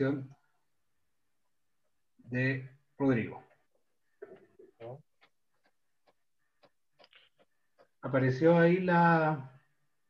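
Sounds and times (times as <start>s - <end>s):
faint clicks: 4.2s - 8.0s.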